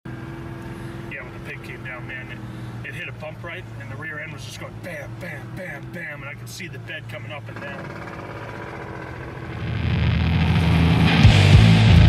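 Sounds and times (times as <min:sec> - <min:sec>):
vehicle engine humming: 0:00.1 - 0:12.0
man talking: 0:01.1 - 0:07.8.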